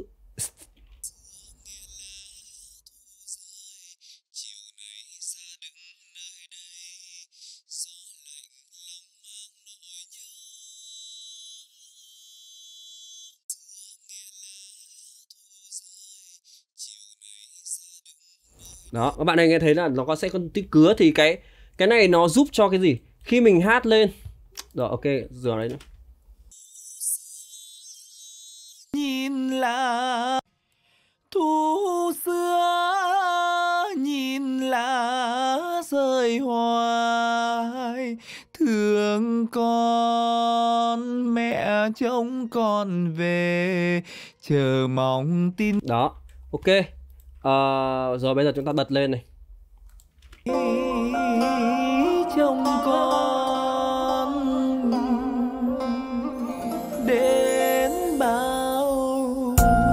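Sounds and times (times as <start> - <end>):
thin buzzing sung vocal: 50.5 - 59.6.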